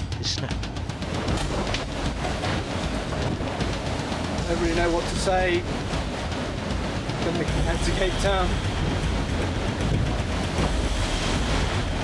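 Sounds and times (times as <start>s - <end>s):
wind and sea rushing: 0.0s - 12.0s.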